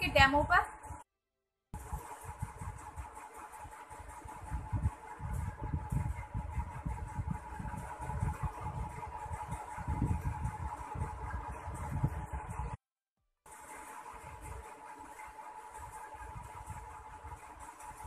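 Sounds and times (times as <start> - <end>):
steady mechanical hum: 0.0 - 1.0, 1.8 - 12.8, 13.5 - 18.0.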